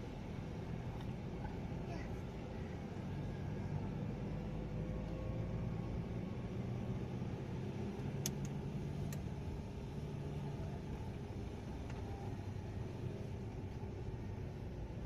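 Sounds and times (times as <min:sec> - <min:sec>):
vehicle engine and road hum: 0:00.0 - 0:15.0.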